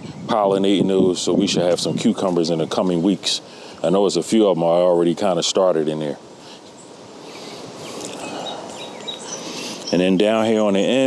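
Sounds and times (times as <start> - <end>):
faint high chirps: 6.7 - 10.6.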